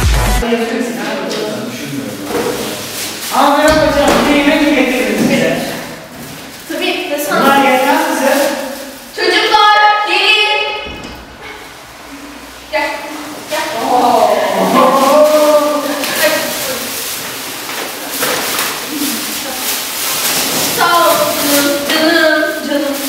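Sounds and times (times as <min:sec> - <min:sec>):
plastic bags rustling: 0:02.0 - 0:23.0
girls talking: 0:03.3 - 0:23.0.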